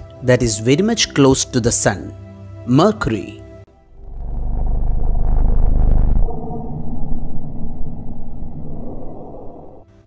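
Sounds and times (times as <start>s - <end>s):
deep drone: 3.7s - 10.0s.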